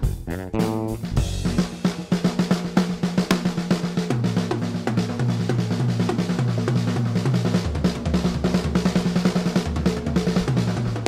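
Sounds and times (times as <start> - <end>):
drum kit fast strokes: 0.0 - 11.0.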